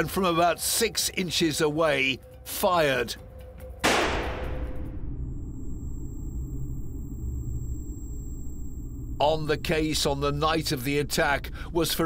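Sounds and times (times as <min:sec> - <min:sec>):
low rumbling drone: 0:03.9 - 0:12.0
faint high-pitched ringing tone: 0:04.5 - 0:12.0.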